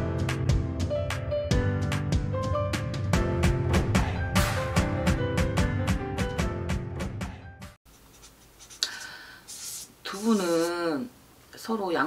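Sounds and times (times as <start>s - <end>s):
pen scratching on paper: 7.9s - 8.8s, 9.5s - 10.8s.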